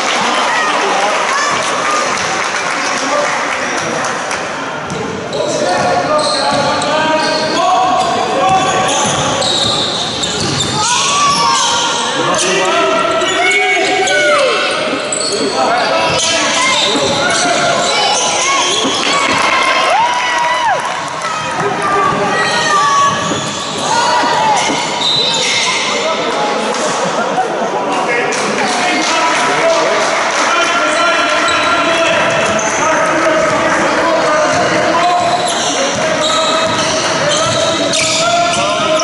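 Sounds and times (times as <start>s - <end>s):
shoes squeaking on court: 4.9s - 12.4s, 13.0s - 19.5s, 22.4s - 26.0s, 34.2s - 39.0s
players calling out: 4.9s - 27.7s, 28.4s - 39.0s.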